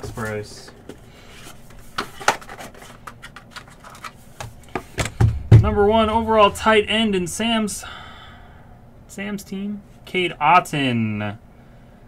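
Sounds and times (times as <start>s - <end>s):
trading cards being shuffled: 1.4s - 4.9s.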